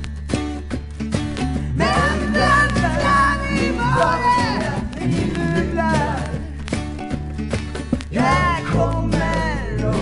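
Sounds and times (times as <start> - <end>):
banjo: 0.0 - 10.0
bass line: 0.0 - 10.0
strummed guitars: 0.0 - 10.0
woman singing: 1.8 - 6.8, 8.1 - 10.0.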